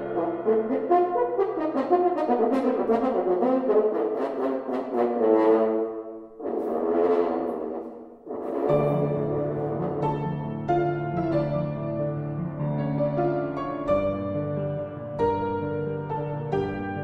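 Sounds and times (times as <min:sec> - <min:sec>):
french horn playing: 0:00.0 - 0:11.3
piano accompaniment: 0:00.0 - 0:17.0.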